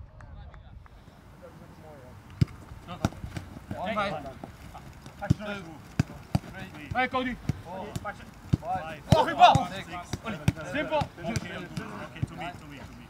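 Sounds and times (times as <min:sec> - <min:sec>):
players shouting: 0:01.4 - 0:13.0
football kick thuds: 0:02.4 - 0:12.6.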